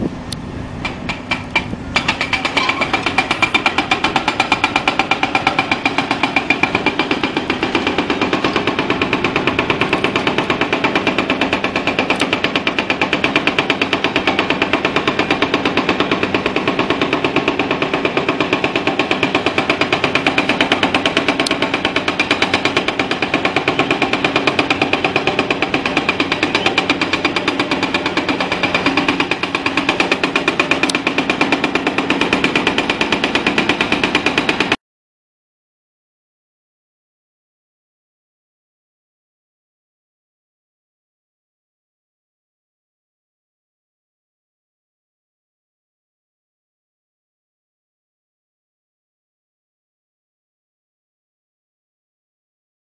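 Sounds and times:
hydraulic breaker hammering rock: 0.8 - 34.8.

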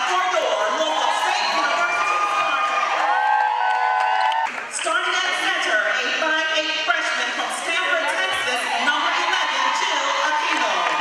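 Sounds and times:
women shouting and cheering: 0.0 - 5.7, 7.4 - 11.0.

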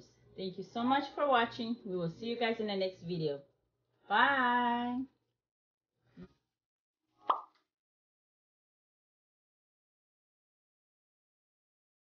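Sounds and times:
short pop sound effect: 7.2 - 7.6.

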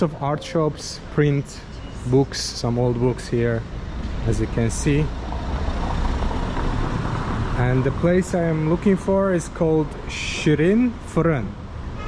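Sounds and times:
car passing on cobblestones: 0.0 - 11.0.

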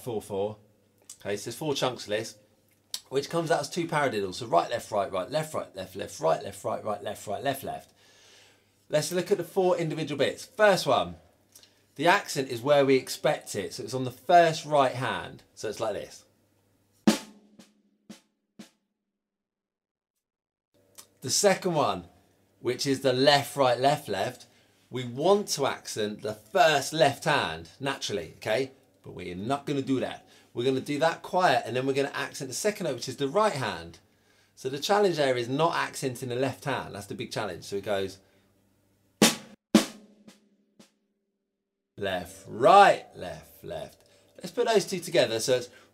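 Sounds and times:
snare drum strokes: 17.0 - 18.8, 39.2 - 41.0.

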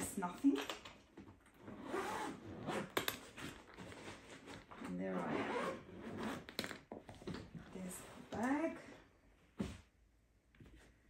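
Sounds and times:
suitcase zipper being pulled: 1.6 - 6.6.

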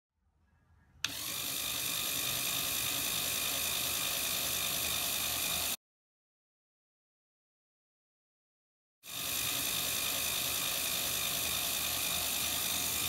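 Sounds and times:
plastic gear train whirring: 1.0 - 5.8, 9.1 - 13.0.

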